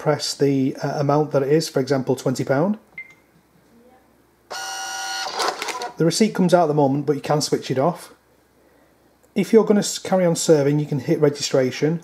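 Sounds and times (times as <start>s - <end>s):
receipt printer whirring: 4.5s - 6.0s.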